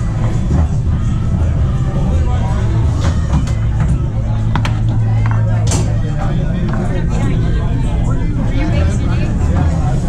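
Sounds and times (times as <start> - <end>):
background chatter: 0.0 - 10.0
steady low hum: 0.0 - 10.0
foosball table clacks: 3.0 - 6.0.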